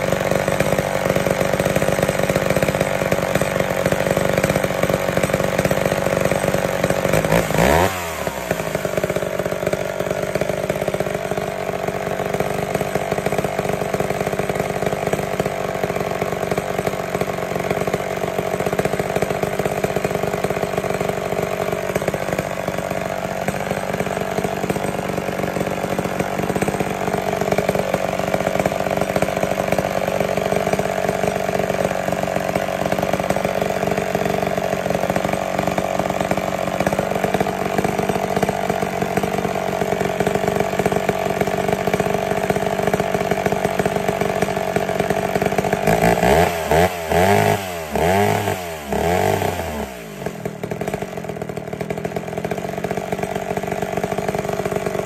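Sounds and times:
chainsaw idling: 0.0 - 55.0.

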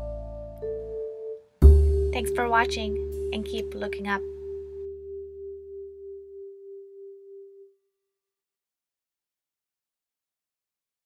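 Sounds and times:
low bass notes: 1.6 - 5.9.

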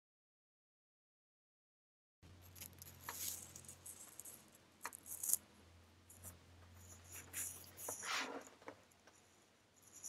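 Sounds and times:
low electrical hum: 2.2 - 10.0.

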